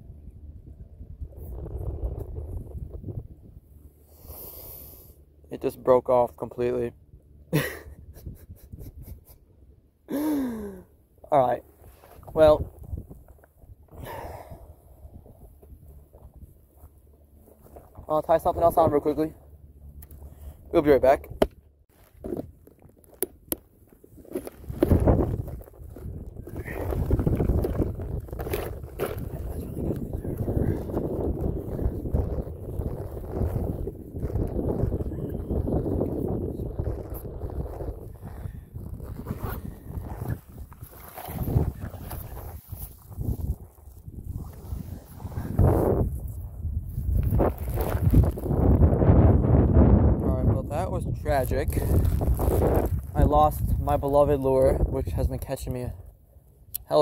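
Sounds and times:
wind rumbling on microphone: 0.0s - 5.0s, 6.6s - 9.7s, 11.3s - 56.3s
handling and rustling noise: 21.9s - 30.4s.

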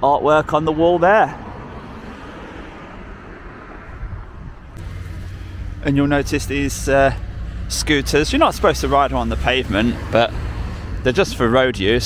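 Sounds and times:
distant road traffic rumble: 0.0s - 12.0s.

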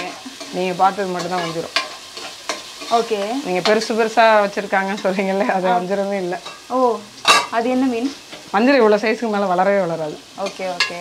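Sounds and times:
masala frying in a pot: 0.0s - 11.0s
woman talking: 2.9s - 11.0s.

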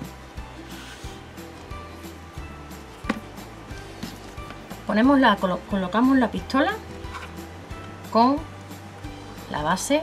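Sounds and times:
background music with soft beat: 0.0s - 10.0s.

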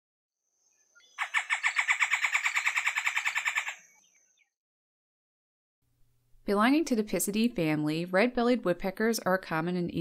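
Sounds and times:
woodpecker fast sharp notes: 1.0s - 4.2s.

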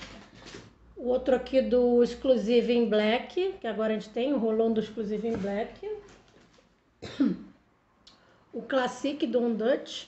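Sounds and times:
woman coughing: 7.0s - 7.6s.

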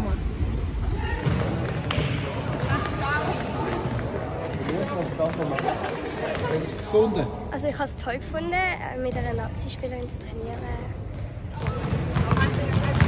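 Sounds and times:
balls bouncing on hall floor: 0.8s - 6.6s, 9.0s - 13.0s.

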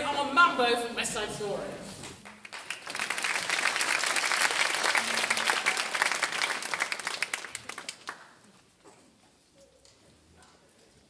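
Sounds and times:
audience applauding: 2.2s - 8.5s.

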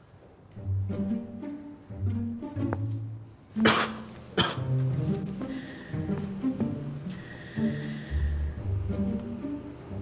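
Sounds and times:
man sneezing: 3.6s - 4.7s.

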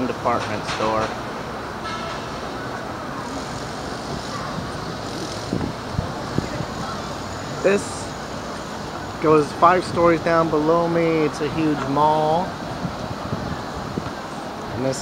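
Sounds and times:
road traffic hum: 0.0s - 15.0s.

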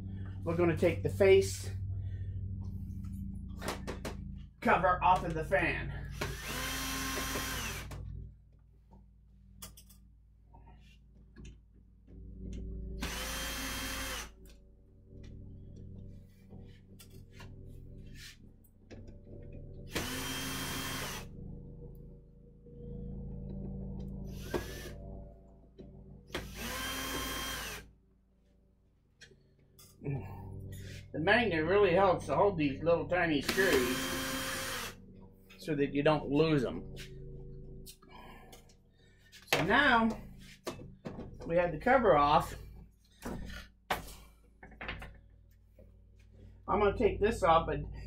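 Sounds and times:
steady low hum: 0.0s - 44.6s
cordless drill motor whine: 6.1s - 8.0s, 13.0s - 14.4s, 19.9s - 21.3s, 24.3s - 25.0s, 26.3s - 27.9s, 33.4s - 35.0s.

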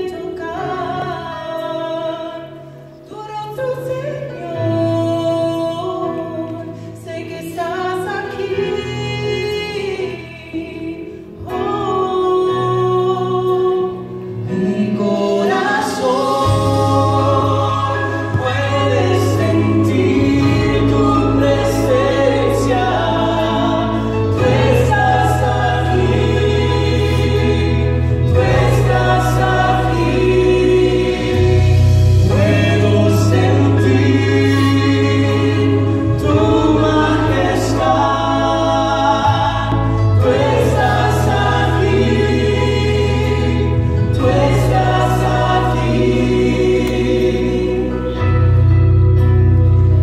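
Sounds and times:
man and woman singing worship song: 0.0s - 48.9s
instrumental accompaniment: 13.6s - 50.0s.

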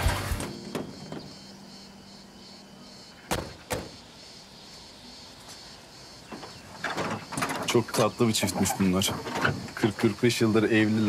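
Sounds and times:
background music: 0.0s - 3.4s.

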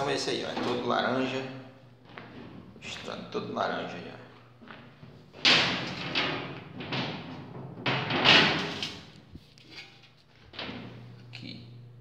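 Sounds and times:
low machinery hum: 0.0s - 12.0s
metal clattering on steel floor: 5.0s - 10.8s.

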